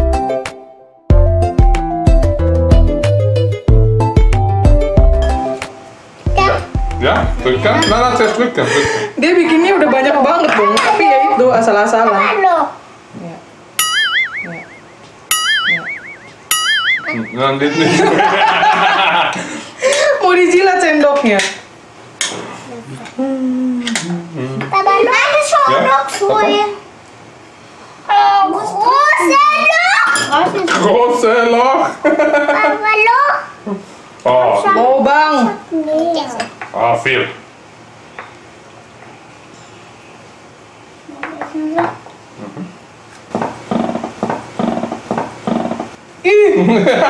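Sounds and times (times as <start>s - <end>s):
person holding a steady tone: 13.8s - 17.8s.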